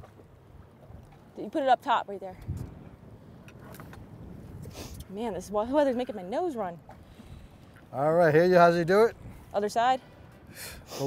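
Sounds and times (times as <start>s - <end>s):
wind and water around a boat: 0.0s - 11.0s
brief hiss: 4.6s - 5.0s.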